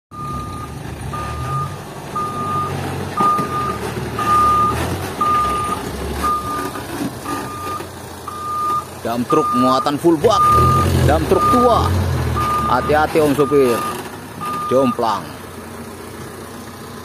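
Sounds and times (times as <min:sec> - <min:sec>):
truck reversing beeper: 0:00.1 - 0:15.4
truck engine running: 0:00.1 - 0:17.0.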